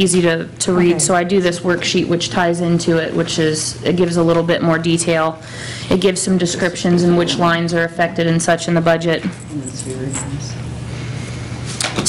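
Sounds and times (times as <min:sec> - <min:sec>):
low electrical hum: 0:00.0 - 0:12.0
room noise: 0:00.0 - 0:12.0.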